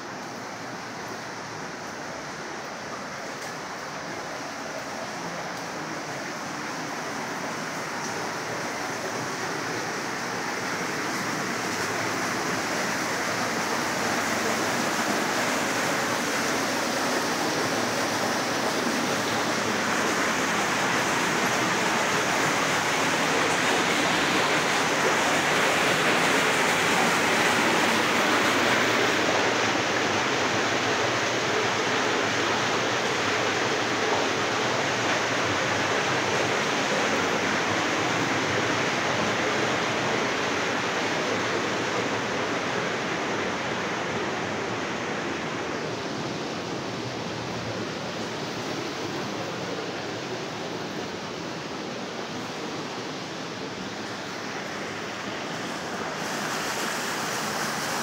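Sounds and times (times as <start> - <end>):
rushing water of stream: 0.0 - 58.0.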